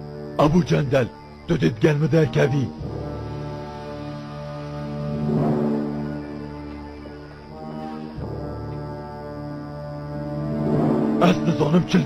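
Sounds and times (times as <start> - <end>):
dramatic low sustained chords: 1.1 - 12.0.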